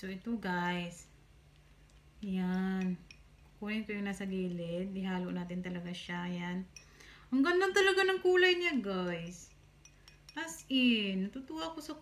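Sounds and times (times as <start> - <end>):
spoon clinking on ceramic bowl: 2.7 - 3.6, 9.4 - 10.7.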